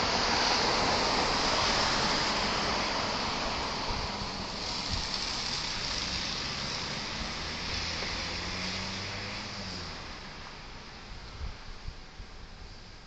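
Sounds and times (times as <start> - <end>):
road traffic passing: 0.0 - 13.0.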